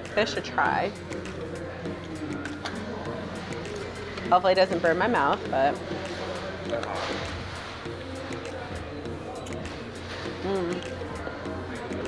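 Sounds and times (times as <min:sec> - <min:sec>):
background music: 0:00.0 - 0:12.0
murmur of diners' voices: 0:00.0 - 0:12.0.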